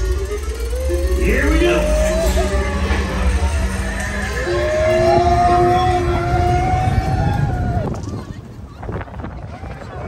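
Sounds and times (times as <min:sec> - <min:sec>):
long high-pitched whine: 0:00.0 - 0:08.1
low rumble: 0:00.0 - 0:10.0
roller coaster train launching: 0:00.0 - 0:10.0.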